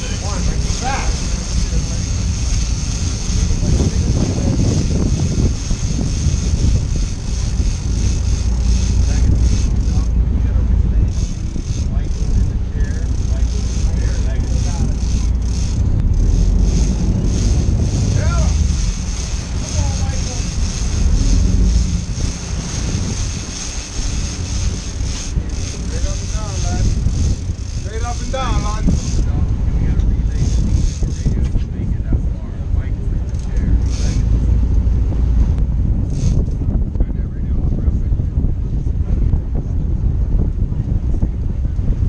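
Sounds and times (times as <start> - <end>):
boat engines rumbling: 0.0 - 42.0
wind buffeting microphone: 0.0 - 42.0.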